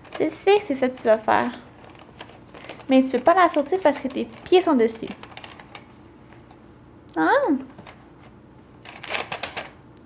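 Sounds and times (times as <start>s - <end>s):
paper bag rustling: 0.0s - 6.6s, 8.8s - 9.7s.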